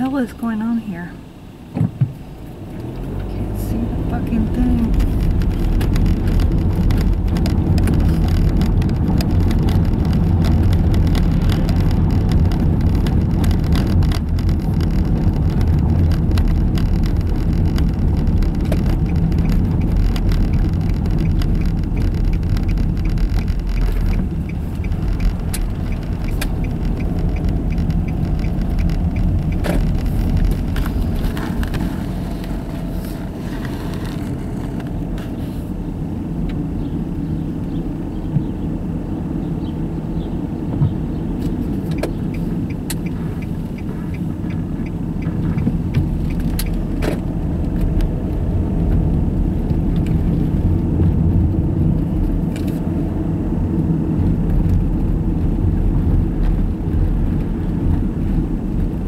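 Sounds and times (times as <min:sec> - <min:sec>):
car tyres and engine rumble: 0:00.0 - 0:59.0
small rattles and knocks: 0:04.7 - 0:35.3.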